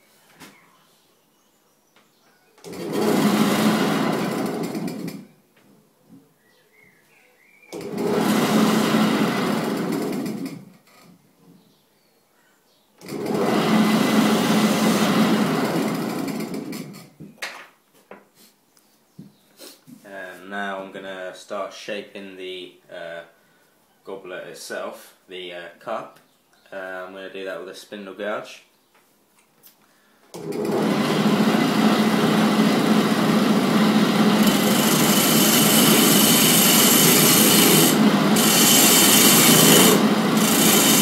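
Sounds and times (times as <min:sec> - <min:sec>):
lathe tool cutting wood: 0:02.7 - 0:05.0, 0:07.8 - 0:10.4, 0:13.0 - 0:16.6, 0:30.4 - 0:41.0.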